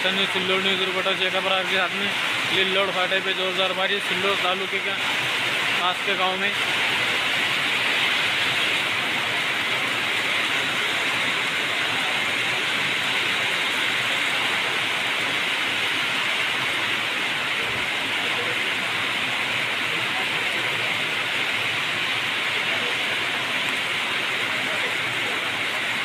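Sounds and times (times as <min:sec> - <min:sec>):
rain falling steadily: 0:00.0 - 0:26.0.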